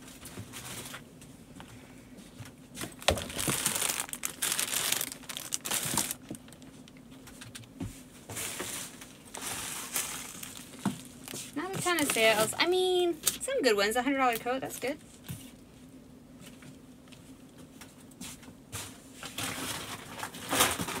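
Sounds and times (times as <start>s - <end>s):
plastic packaging crinkling: 2.8s - 7.0s, 8.4s - 13.4s.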